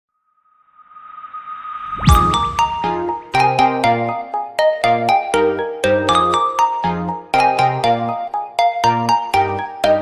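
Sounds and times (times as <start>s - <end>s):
steady high-pitched tone: 0.5s - 3.8s
whooshing riser: 0.7s - 3.3s.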